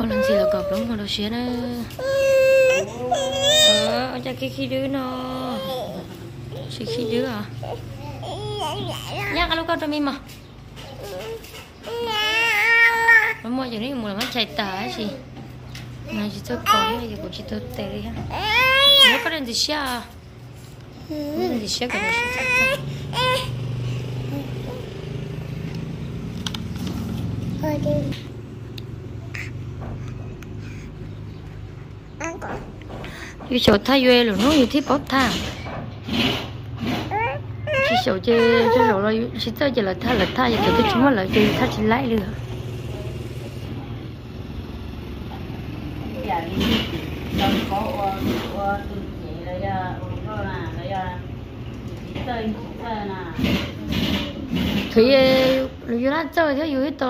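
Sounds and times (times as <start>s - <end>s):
child crying: 37.1s - 39.1s.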